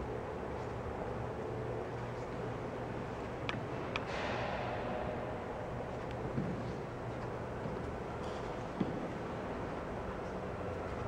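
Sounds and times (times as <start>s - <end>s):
indoor hall background noise: 0.0s - 11.0s.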